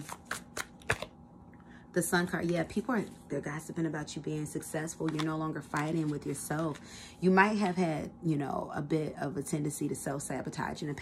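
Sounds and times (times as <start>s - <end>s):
card snaps: 0.0s - 1.1s
cards being shuffled: 0.0s - 1.1s, 5.0s - 6.8s.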